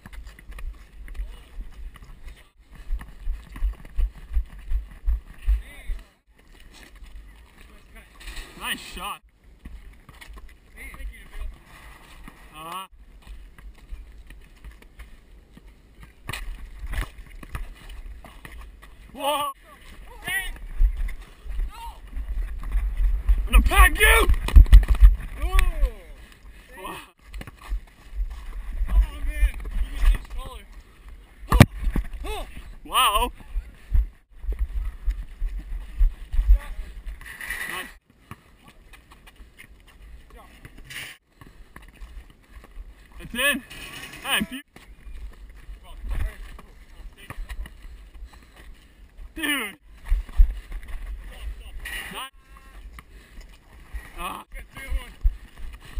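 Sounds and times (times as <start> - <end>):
knocks and scuffs on asphalt: 0.0 - 5.8, 9.6 - 12.5, 13.2 - 19.1, 24.3 - 25.7, 27.2 - 30.4
wind rumbling on microphone: 19.9 - 26.2, 27.6 - 37.7.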